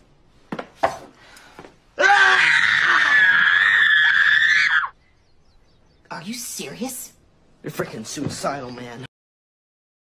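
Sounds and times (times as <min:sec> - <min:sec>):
person screaming: 0:02.0 - 0:04.9.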